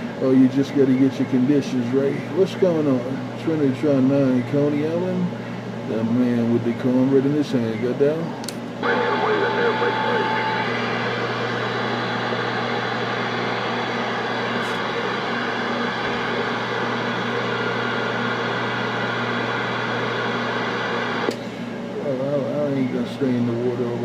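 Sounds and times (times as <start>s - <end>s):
radio static hiss: 8.8s - 21.3s.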